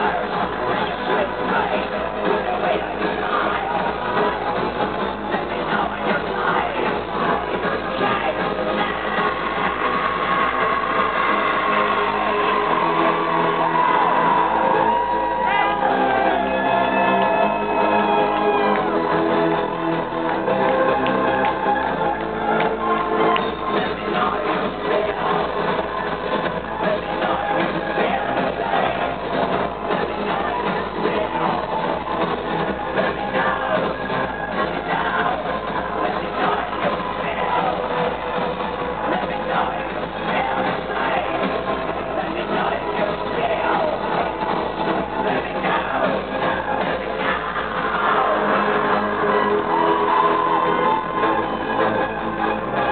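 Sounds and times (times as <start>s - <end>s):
electro-industrial music: 0.0s - 52.9s.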